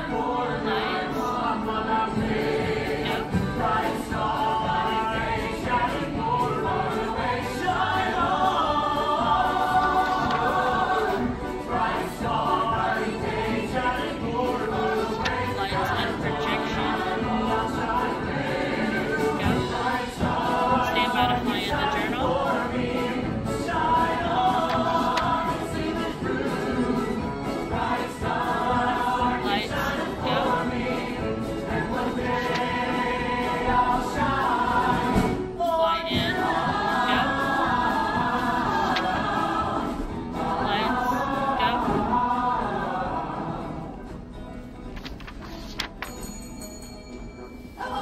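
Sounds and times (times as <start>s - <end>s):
ensemble singing in chorus: 0.0s - 44.8s, 47.8s - 48.0s.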